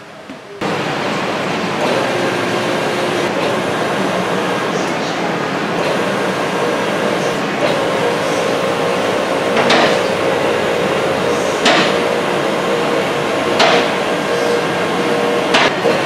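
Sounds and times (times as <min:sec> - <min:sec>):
hydraulic pump motor humming: 0:00.0 - 0:16.0.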